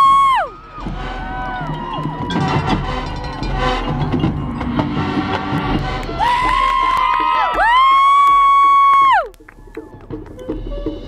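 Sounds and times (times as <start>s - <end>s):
marching band playing: 0.5s - 7.9s.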